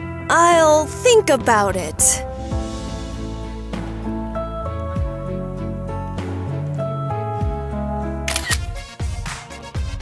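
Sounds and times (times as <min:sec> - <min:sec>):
soft background music: 0:00.0 - 0:10.0
phone camera shutter click: 0:08.3 - 0:08.8.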